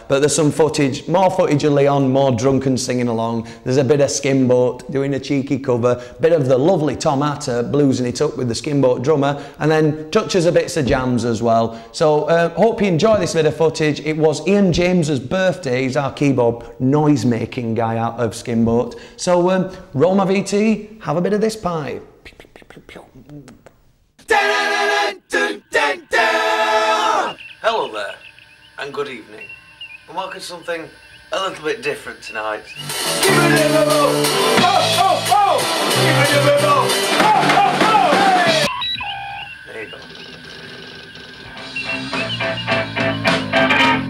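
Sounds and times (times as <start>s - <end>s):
mouth clicks: 22.1s - 24.3s
low background hiss: 27.4s - 32.8s
guitar music: 30.1s - 44.0s.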